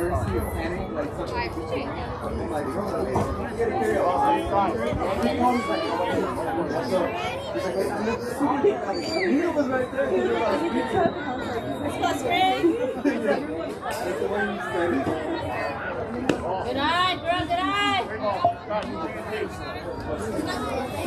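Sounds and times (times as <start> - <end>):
many voices chattering: 0.0 - 21.0.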